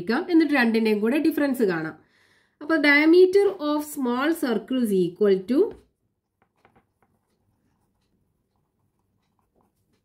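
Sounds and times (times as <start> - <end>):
pen scratching on paper: 6.2 - 10.0.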